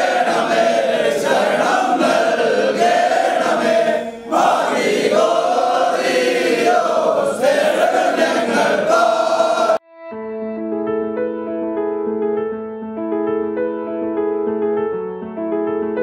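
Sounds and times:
men chanting in unison: 0.0s - 9.8s.

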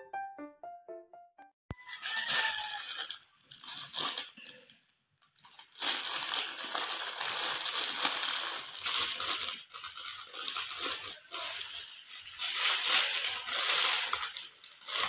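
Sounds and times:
plastic zip bag crinkling: 1.7s - 15.0s.

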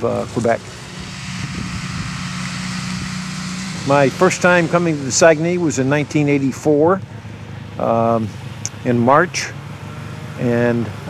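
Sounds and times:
snowmobile engines droning: 0.0s - 11.0s.

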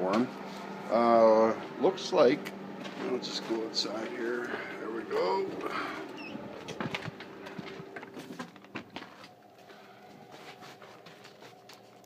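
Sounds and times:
faint steady hum: 0.0s - 12.0s
footsteps through a doorway: 2.7s - 12.0s.

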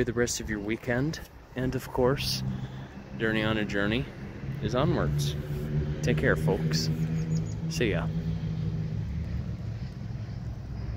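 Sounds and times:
distant engine droning: 1.0s - 10.9s.

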